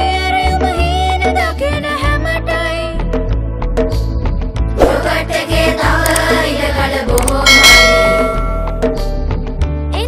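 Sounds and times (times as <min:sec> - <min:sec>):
background music: 0:00.0 - 0:10.0
bright bell chime: 0:07.5 - 0:09.0.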